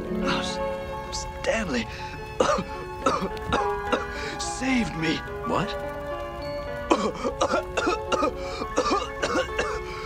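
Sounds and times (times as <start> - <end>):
background music with held tones: 0.0 - 10.0
cartoon character coughing: 6.9 - 9.8.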